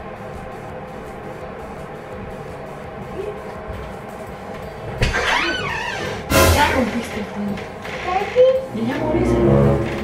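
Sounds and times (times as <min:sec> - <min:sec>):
squeaky door hinge creak: 0:05.1 - 0:06.2.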